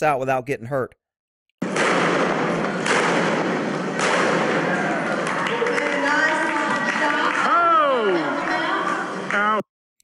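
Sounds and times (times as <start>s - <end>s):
sharp bangs: 1.6s - 7.0s
hall and crowd noise: 1.6s - 9.6s
raised crowd voices: 3.8s - 9.6s.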